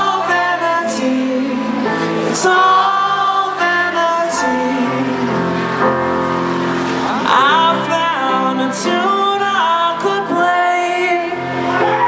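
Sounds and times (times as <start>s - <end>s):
person singing: 0.0s - 6.0s, 7.0s - 12.0s.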